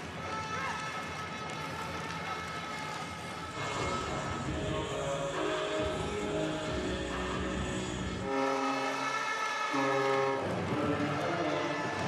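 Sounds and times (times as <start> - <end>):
crowd noise: 0.0 - 12.0
goal horn: 3.6 - 4.4, 8.2 - 12.0.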